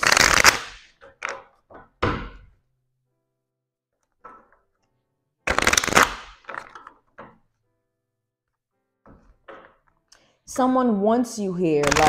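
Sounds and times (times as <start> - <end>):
cards being riffle-shuffled: 0.0 - 1.5, 5.5 - 7.0, 11.8 - 12.0.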